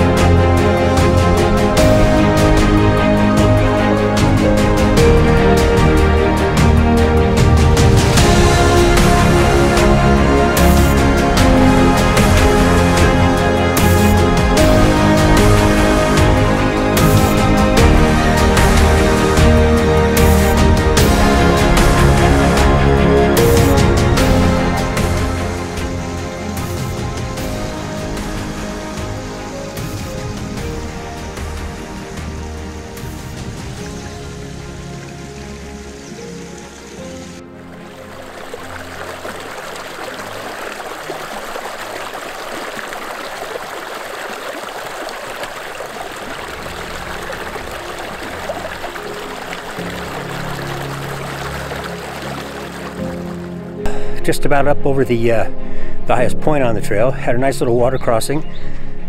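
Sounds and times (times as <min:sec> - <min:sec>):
background music: 0:00.0 - 0:59.0
creek splashing between boulders: 0:34.2 - 0:53.5.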